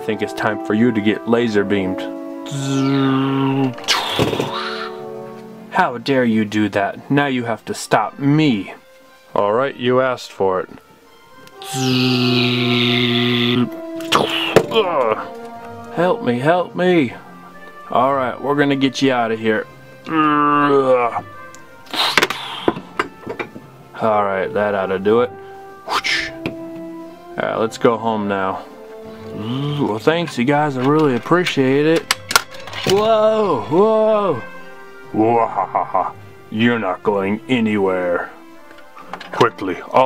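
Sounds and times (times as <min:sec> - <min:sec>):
background music: 0:00.0 - 0:40.0
plastic toys clicking and knocking: 0:32.0 - 0:33.0.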